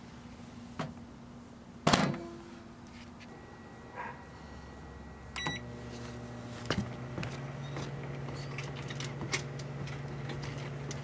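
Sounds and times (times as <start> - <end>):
microwave running hum: 0.0 - 11.0
microwave keypad beep: 5.0 - 5.7.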